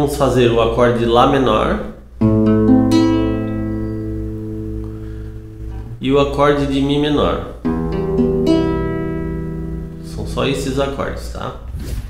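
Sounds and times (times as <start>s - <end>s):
nylon-string guitar chord: 2.2s - 6.0s, 7.6s - 10.5s.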